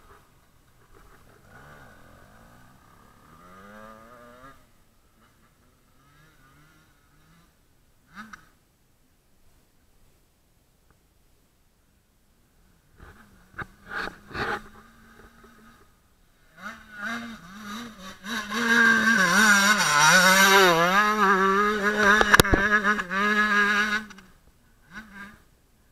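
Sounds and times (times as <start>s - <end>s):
motocross bike engine passing: 0.0s - 8.6s, 12.6s - 25.5s.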